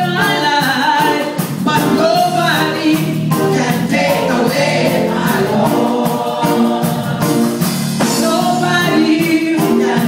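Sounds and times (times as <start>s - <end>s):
gospel choir singing: 0.0s - 10.0s
steady beat: 1.0s - 9.8s.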